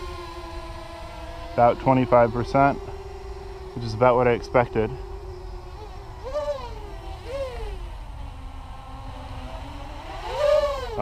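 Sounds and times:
low steady rumble: 0.0 - 11.0
quadcopter buzzing whine: 0.0 - 11.0.

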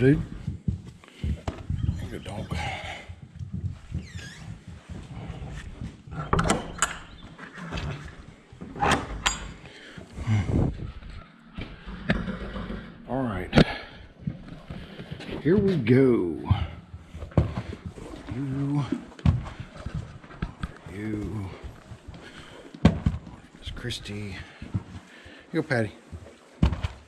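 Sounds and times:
horses bustling: 0.0 - 27.0
metal latch clacking: 8.8 - 9.6.

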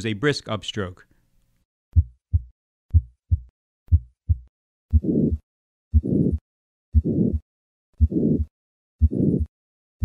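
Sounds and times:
heartbeat lub-dub: 2.0 - 6.4, 8.0 - 9.5.

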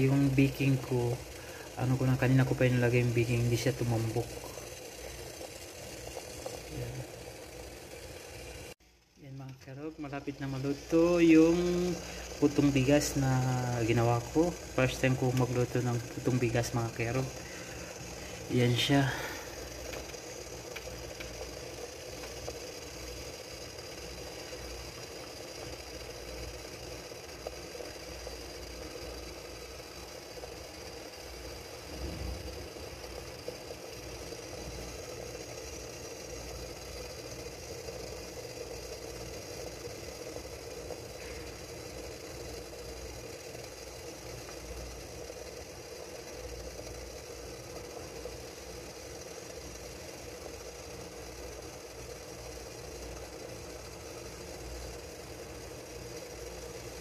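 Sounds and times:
water boiling with rattle: 0.0 - 57.0.

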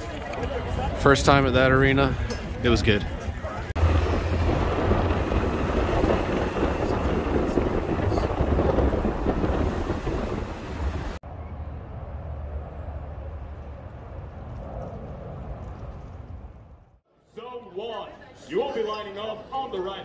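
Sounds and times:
low outdoor rumble: 3.4 - 17.0.

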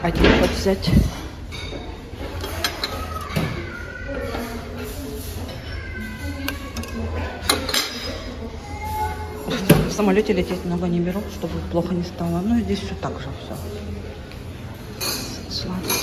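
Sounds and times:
metal tongs clinking on dishes: 1.5 - 3.3, 4.3 - 8.4, 14.9 - 16.0.

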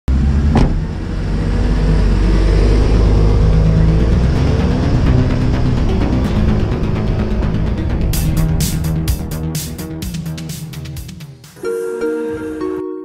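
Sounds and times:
car engine revving: 0.1 - 11.1
intro music: 2.0 - 13.0.

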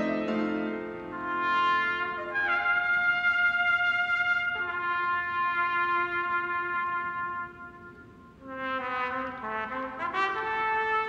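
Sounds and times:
trumpet playing: 0.0 - 11.0.

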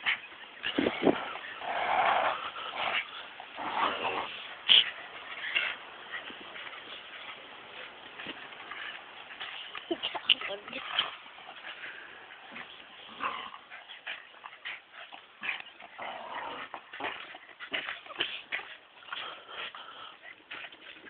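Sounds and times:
dogs growling: 0.0 - 21.0.

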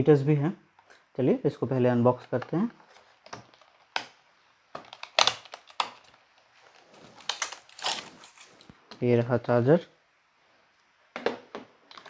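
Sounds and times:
plastic packaging snapping and crackling: 4.8 - 8.8.

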